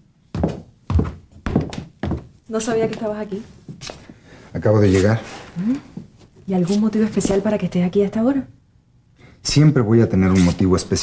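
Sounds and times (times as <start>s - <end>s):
footsteps down a staircase: 0.0s - 4.2s.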